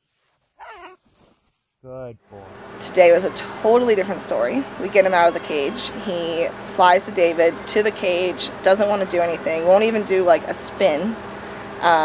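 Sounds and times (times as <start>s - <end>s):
brief lower voice: 1.9s - 2.5s.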